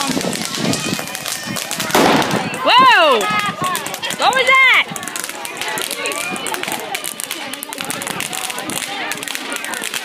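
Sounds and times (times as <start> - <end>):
faint voices: 0.0 - 10.0
ground firework crackling: 0.0 - 10.0.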